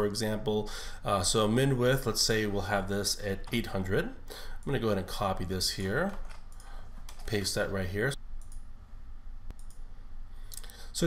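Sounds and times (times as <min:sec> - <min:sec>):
low steady hum: 0:00.0 - 0:11.0
computer mouse click: 0:08.4 - 0:08.7, 0:09.5 - 0:09.9.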